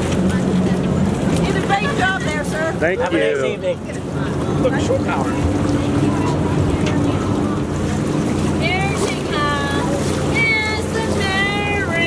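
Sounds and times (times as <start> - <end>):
voices of people walking by: 0.0 - 11.2
boat engine idling: 0.0 - 12.0.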